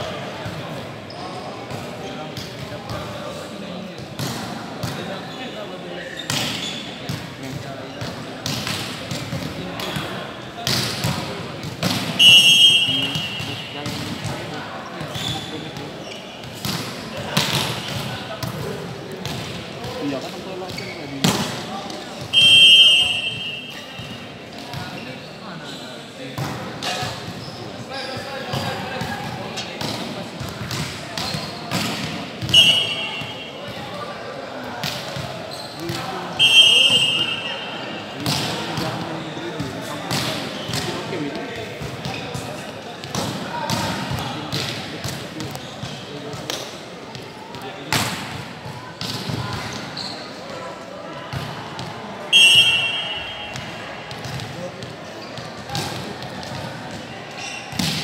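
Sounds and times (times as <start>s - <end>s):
players' voices echoing: 0.0s - 58.0s
volleyball hits: 8.0s - 14.4s
referee's whistle blasts: 12.2s - 13.8s, 22.2s - 24.2s, 32.4s - 33.6s, 36.3s - 38.0s, 52.3s - 53.8s.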